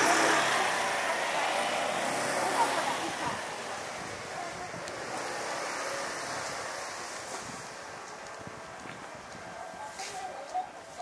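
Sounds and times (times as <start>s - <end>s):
street market noise: 0.0s - 11.0s
wind on microphone: 3.0s - 10.3s.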